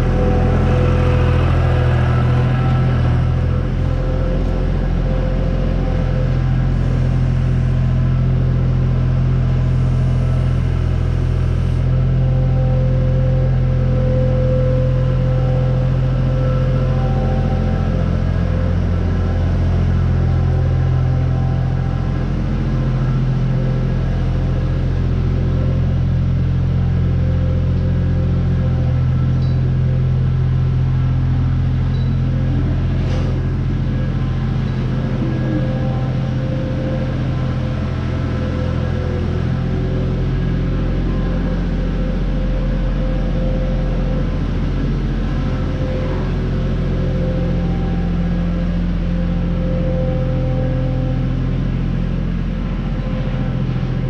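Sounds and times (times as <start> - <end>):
diesel engine running: 0.0 - 54.0.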